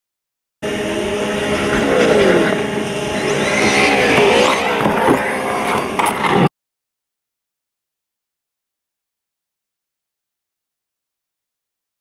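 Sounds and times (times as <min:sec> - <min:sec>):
simulated engine revving: 0:00.6 - 0:06.5.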